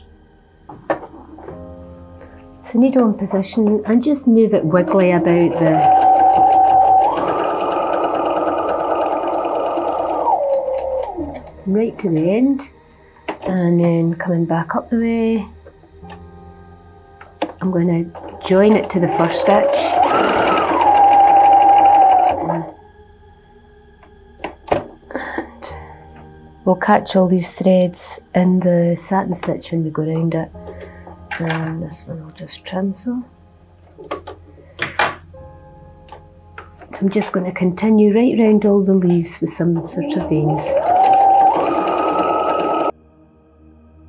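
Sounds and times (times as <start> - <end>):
sewing machine sewing: 4.8 - 11.7, 18.1 - 22.8, 39.8 - 42.9.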